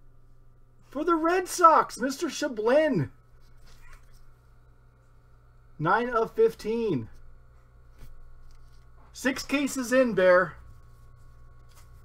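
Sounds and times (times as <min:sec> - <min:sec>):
quiet steady low hum: 0:00.0 - 0:12.0.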